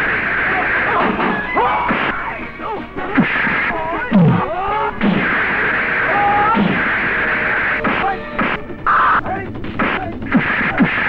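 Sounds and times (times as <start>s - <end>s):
sharp hits: 0.1s - 11.0s
men shouting and grunting: 0.3s - 11.0s.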